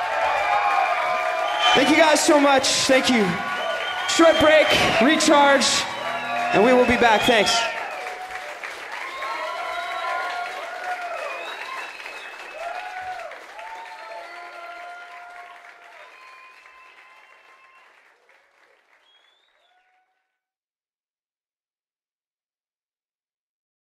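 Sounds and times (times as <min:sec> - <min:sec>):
whoops and shouted voices: 0:00.0 - 0:17.8
audience applauding: 0:00.0 - 0:20.1.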